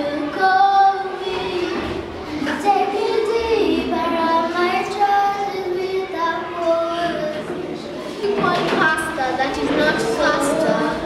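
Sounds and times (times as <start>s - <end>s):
girl singing unaccompanied: 0.0s - 11.0s.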